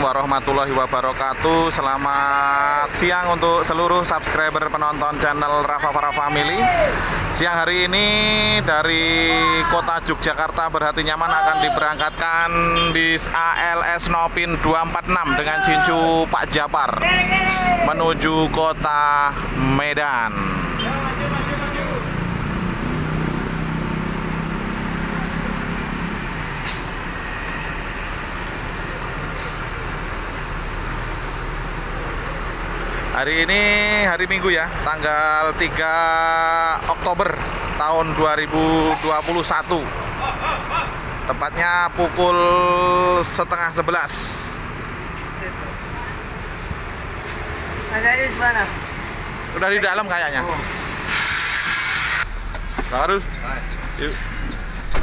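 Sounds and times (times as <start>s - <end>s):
bus diesel engine idling: 0.0s - 55.0s
street traffic: 0.0s - 55.0s
air hissing: 38.8s - 40.0s, 51.0s - 52.3s.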